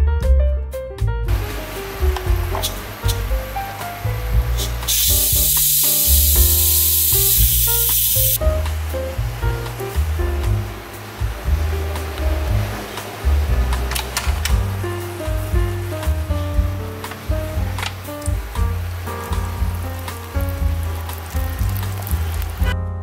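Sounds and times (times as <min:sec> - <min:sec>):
background music: 0:00.0 - 0:23.0
steam hissing from valve: 0:01.3 - 0:08.4.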